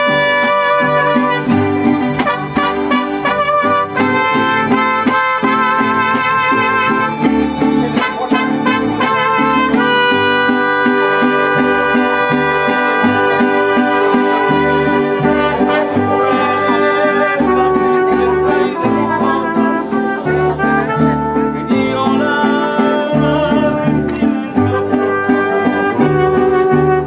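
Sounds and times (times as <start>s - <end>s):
violins playing melody: 0.0s - 16.7s
strummed guitars: 0.0s - 27.0s.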